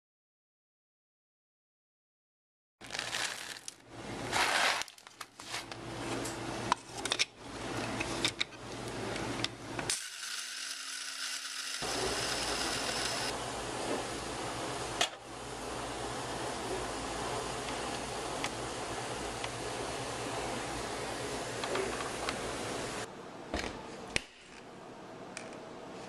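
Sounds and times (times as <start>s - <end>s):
coffee beans rattling: 2.8s - 3.8s
coffee grinder running: 9.9s - 13.4s.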